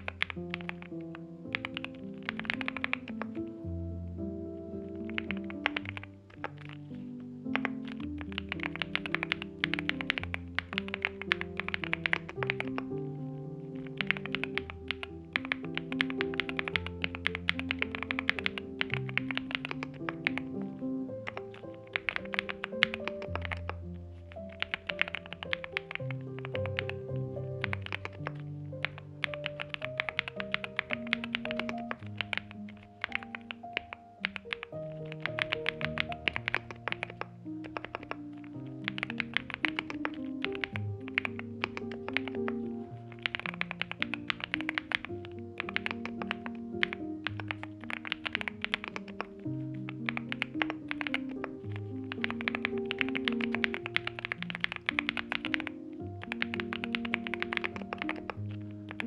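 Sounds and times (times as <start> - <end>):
mechanical keyboard typing: 0.0 - 3.6, 4.9 - 13.0, 13.8 - 59.0
background music: 0.0 - 59.0.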